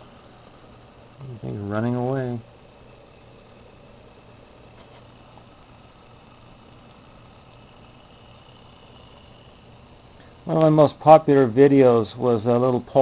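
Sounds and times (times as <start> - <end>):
small motor humming with hiss: 0.0 - 13.0.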